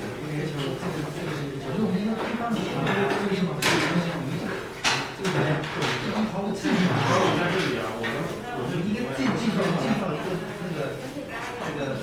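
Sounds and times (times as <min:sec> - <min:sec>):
people talking in a hall: 0:00.0 - 0:12.0.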